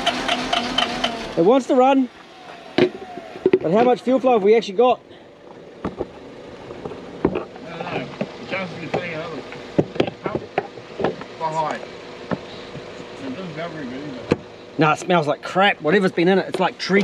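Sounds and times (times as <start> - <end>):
fuel pump humming: 0.0 - 17.0.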